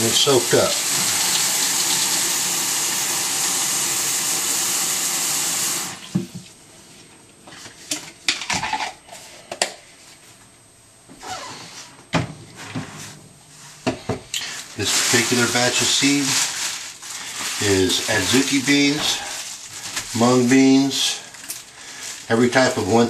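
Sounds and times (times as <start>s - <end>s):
tap water running into cup: 0.5s - 6.0s.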